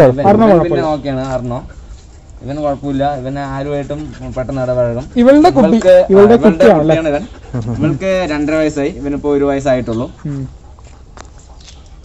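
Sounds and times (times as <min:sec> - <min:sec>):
man talking: 0:00.0 - 0:01.7, 0:02.4 - 0:10.5.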